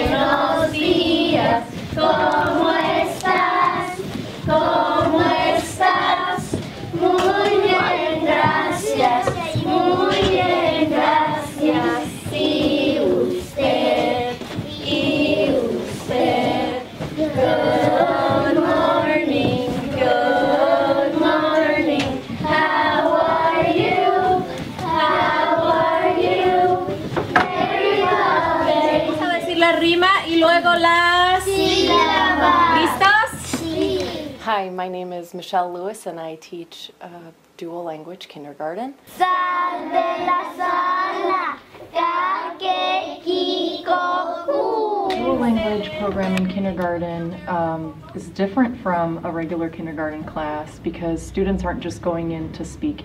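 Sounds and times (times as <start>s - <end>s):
children singing together: 0.0s - 29.6s, 31.2s - 34.4s, 39.1s - 46.2s
woman singing: 45.2s - 51.1s.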